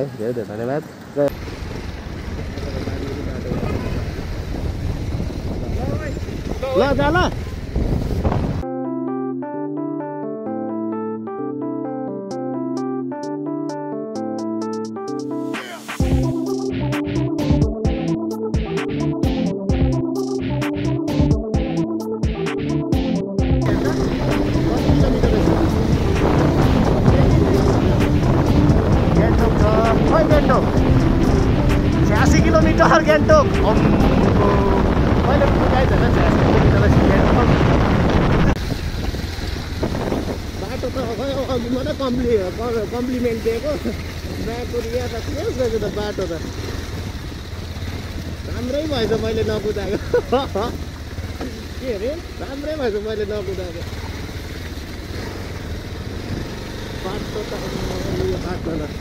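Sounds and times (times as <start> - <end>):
motorcycle running: 0.0 - 8.6, 16.0 - 59.0
wind buffeting microphone: 1.4 - 8.6, 23.7 - 41.5, 56.0 - 56.8
background music: 8.6 - 37.0.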